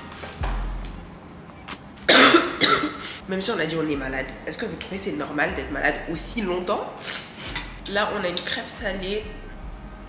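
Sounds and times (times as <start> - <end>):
woman coughing: 2.1 - 3.2.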